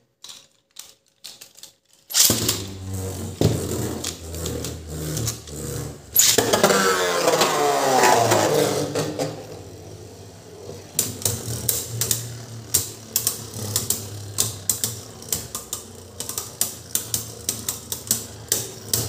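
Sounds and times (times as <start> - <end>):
spinning tops whirring: 2.1 - 19.0.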